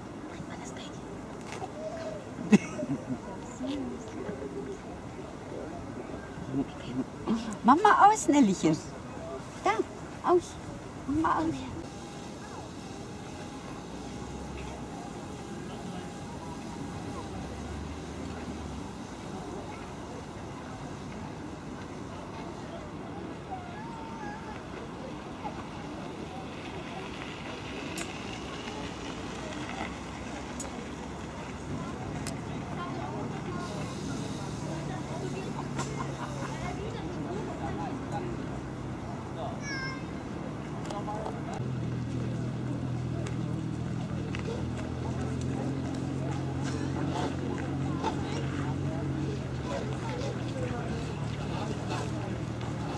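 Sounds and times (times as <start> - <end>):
faint indistinct voices: 0.0 - 52.9.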